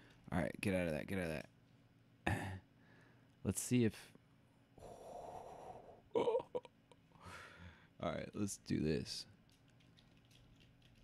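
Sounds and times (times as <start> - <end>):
man's breathy exhale: 4.8 - 6.0.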